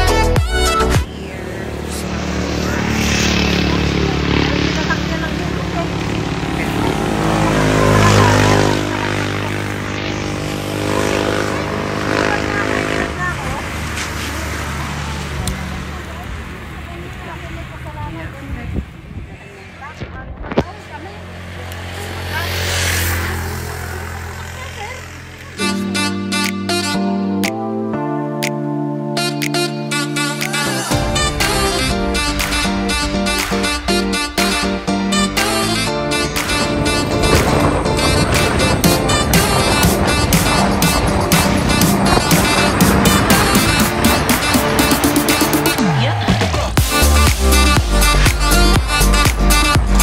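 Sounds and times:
motorcycle engine passing: 1.0s - 27.6s, 29.2s - 50.0s.

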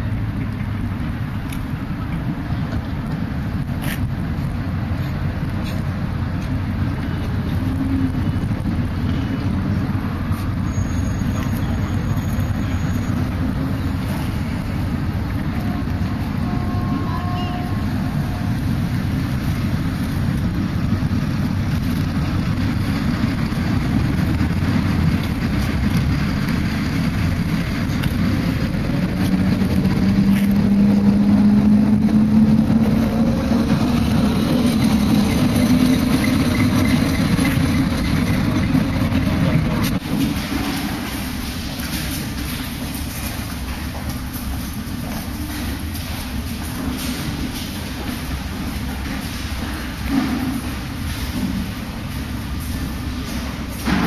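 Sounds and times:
road vehicle rumble: 0.0s - 54.0s
engine note rising in pitch: 28.7s - 36.5s.

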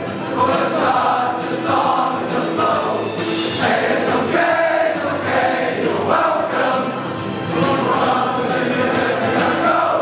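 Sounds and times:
choir singing in unison: 0.3s - 10.0s.

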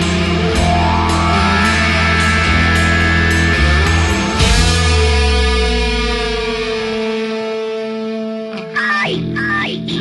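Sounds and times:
loud rock music: 0.0s - 10.0s.

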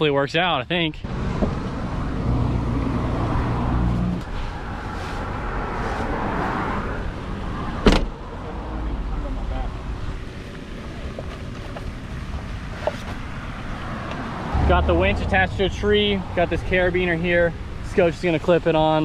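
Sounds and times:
low vehicle hum: 1.0s - 19.0s.

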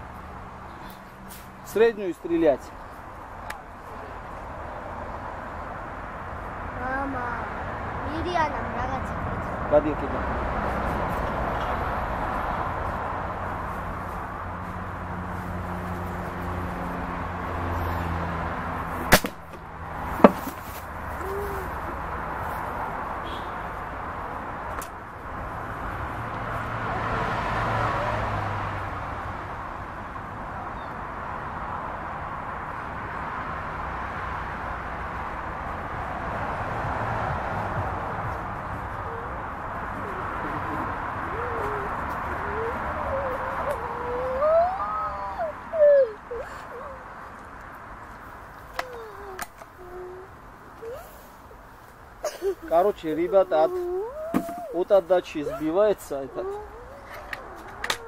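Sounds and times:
sharp crack: 19.0s - 20.8s
outdoor background hum: 34.8s - 54.8s.

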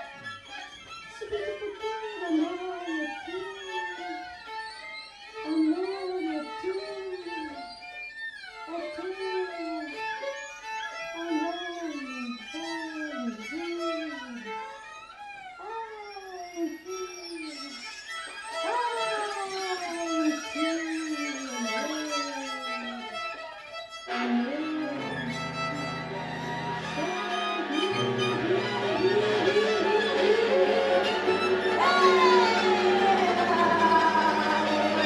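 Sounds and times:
violin: 0.0s - 35.0s
viola: 17.5s - 35.0s
low sustained cello tones: 24.1s - 35.0s.

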